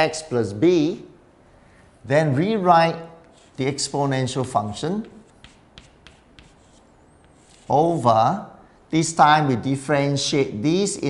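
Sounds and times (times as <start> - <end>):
chalk scratching on chalkboard: 3.2 - 8.0.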